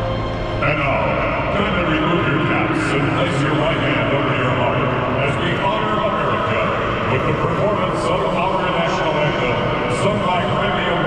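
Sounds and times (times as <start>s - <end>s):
stadium crowd chattering: 0.0s - 11.0s.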